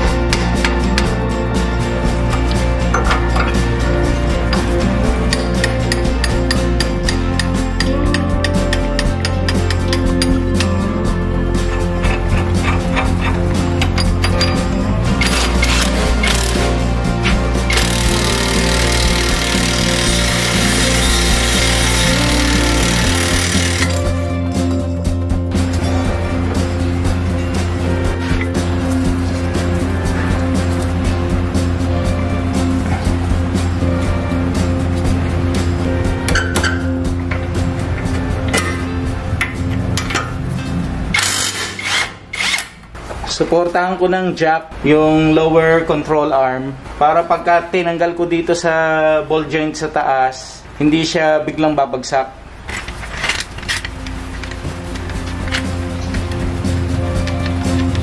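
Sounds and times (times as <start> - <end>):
background music with steady beat: 0.0 - 43.0, 52.7 - 58.0
power tool running: 15.2 - 16.8, 17.6 - 24.2.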